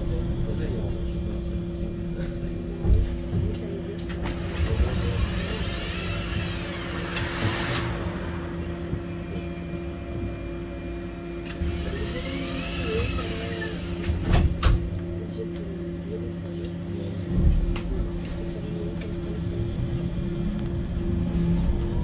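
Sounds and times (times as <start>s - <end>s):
bus engine droning: 0.0s - 22.0s.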